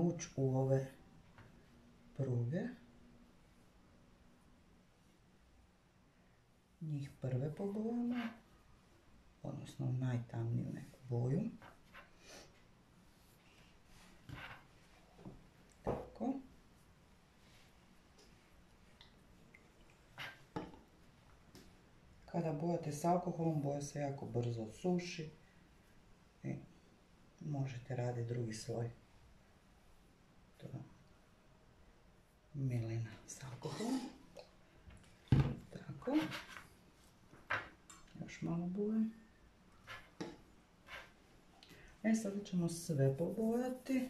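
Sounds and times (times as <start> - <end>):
paintbrush scratching in palette: 36.0 - 36.7, 39.8 - 41.2, 43.1 - 44.0.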